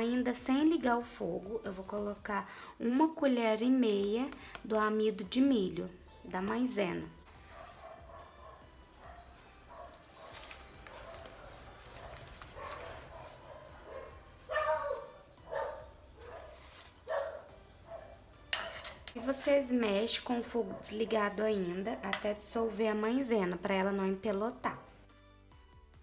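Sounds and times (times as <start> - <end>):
faint household sound: 7.2 - 19.8
dog barking: 7.4 - 18.2, 20.6 - 21.2.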